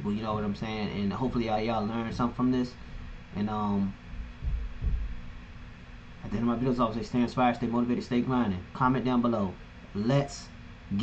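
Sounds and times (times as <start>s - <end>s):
steady low hum: 0.0s - 11.0s
dull low thumps: 4.0s - 5.8s.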